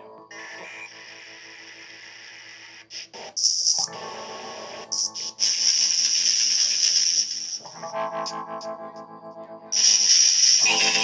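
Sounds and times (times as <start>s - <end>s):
sustained cluster of tones: 0.0s - 11.0s
harsh high hiss with crackle: 0.3s - 8.4s, 9.7s - 11.0s.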